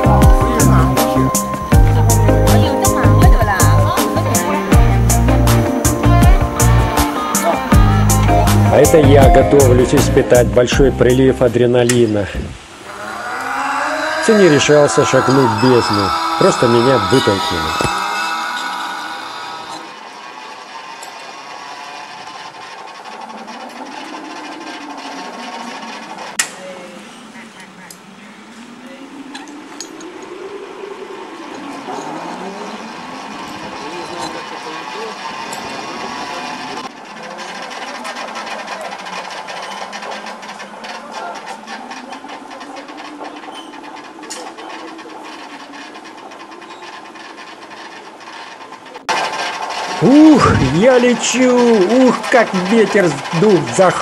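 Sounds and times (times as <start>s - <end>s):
cable descent rig whirring: 0.0s - 54.0s.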